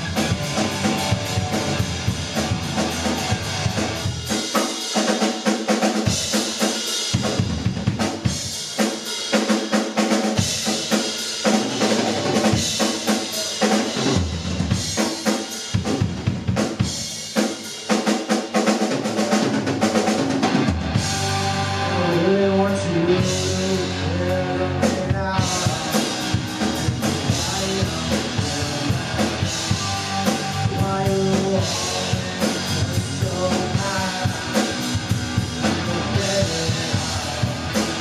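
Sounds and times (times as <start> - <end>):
drum kit: 0.0 - 38.0
rock band playing: 0.0 - 38.0.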